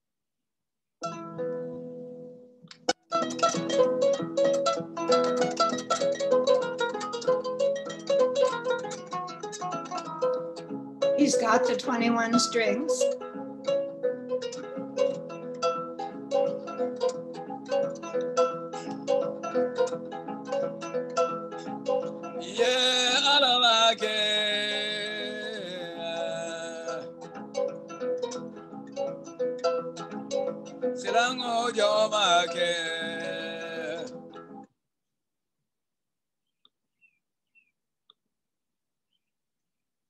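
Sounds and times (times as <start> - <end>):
kora and balafon playing: 1.0 - 34.6
person singing: 21.6 - 27.2, 31.0 - 34.2.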